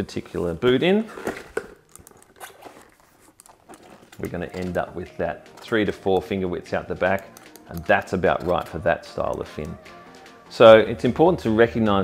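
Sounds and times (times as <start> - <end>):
rubber boot rubbing and creaking: 0.2 - 4.9
small clicks: 7.2 - 9.8.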